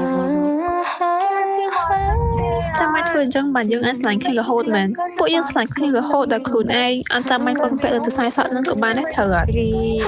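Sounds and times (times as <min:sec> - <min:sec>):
woman humming: 0:01.7 - 0:03.0.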